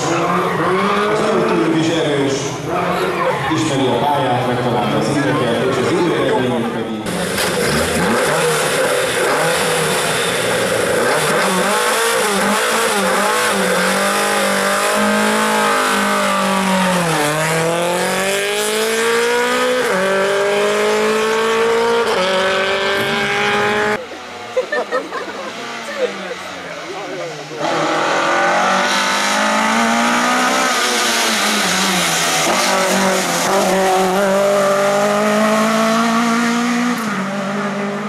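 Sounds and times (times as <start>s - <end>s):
car engine revving hard: 7.1s - 24.0s, 25.5s - 38.0s.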